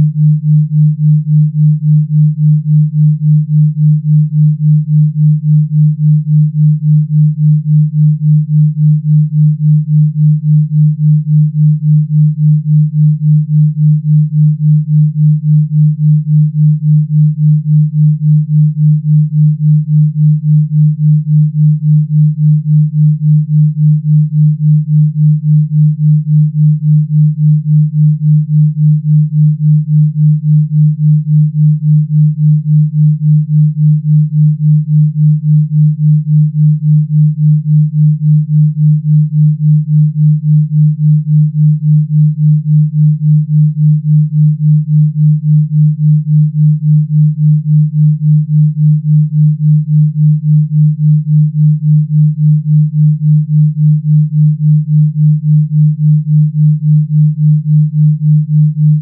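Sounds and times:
pulsing low electronic sine tone: 0:00.0 - 0:59.0.

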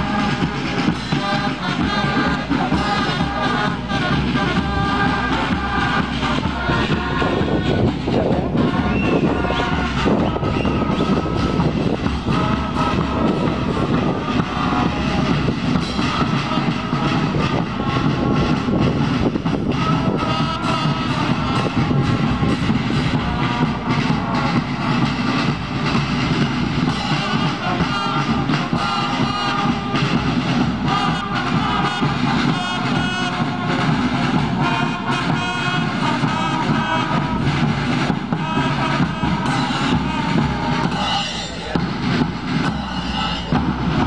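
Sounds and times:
drums and cymbals: 0:00.0 - 0:44.0
trombones holding notes: 0:00.0 - 0:44.0.

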